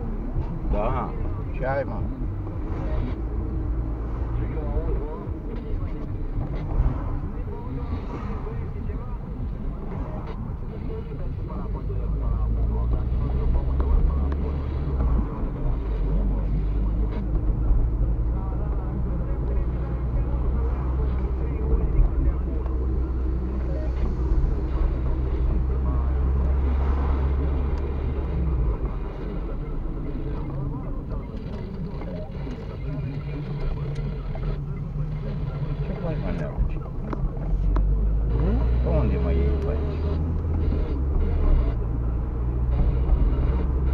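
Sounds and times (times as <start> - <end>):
car engine and road noise: 0.0 - 43.9.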